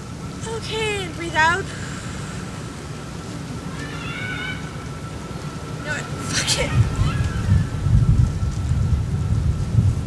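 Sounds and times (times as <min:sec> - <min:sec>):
wind buffeting microphone: 0:04.6 - 0:10.0.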